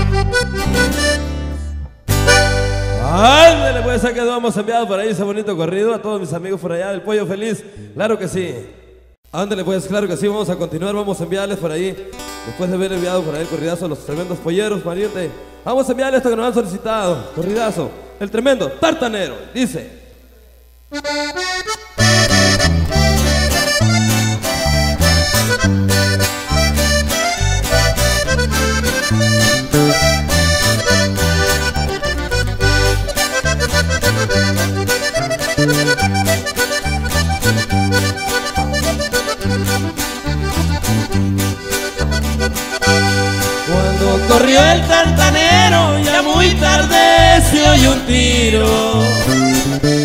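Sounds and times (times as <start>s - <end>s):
button accordion melody: 0.0s - 4.2s, 20.9s - 50.0s
guitar strumming: 0.0s - 4.2s, 12.0s - 15.7s, 20.9s - 50.0s
steady bass beat: 0.0s - 4.2s, 22.0s - 50.0s.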